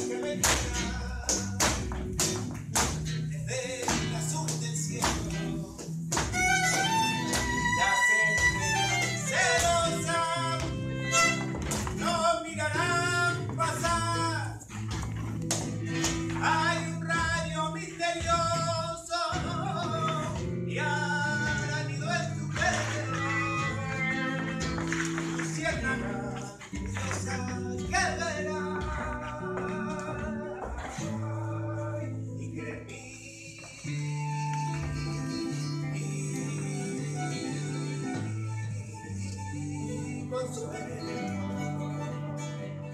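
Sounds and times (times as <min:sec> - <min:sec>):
acoustic guitar: 0:00.0 - 0:42.9.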